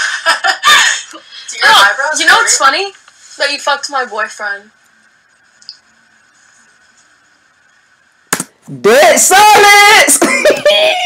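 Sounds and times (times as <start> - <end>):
faint steady hiss: 0.0 - 11.0
man loudly exclaiming: 8.9 - 10.2.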